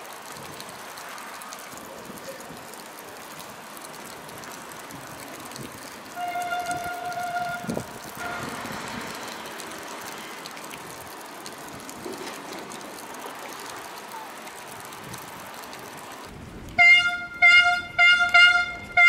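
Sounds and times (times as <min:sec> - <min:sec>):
rain hissing: 0:00.0 - 0:19.0
vehicle horn blast: 0:06.2 - 0:08.7, 0:16.8 - 0:19.0.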